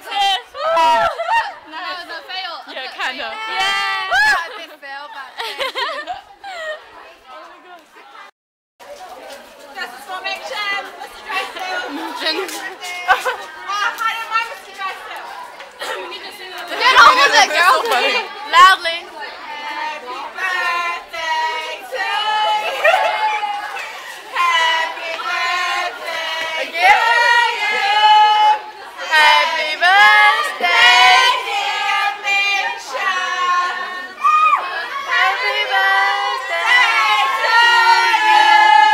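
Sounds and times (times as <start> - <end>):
girls' voices chattering: 0.0 - 38.9.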